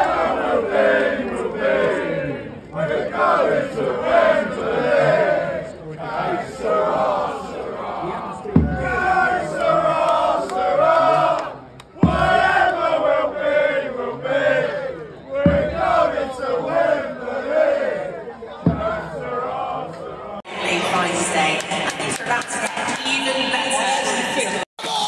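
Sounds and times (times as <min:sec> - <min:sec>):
crowd chanting in unison: 0:00.0 - 0:21.6
marching drum thumps: 0:08.4 - 0:10.6, 0:11.9 - 0:12.8, 0:15.4 - 0:16.4, 0:18.6 - 0:19.6.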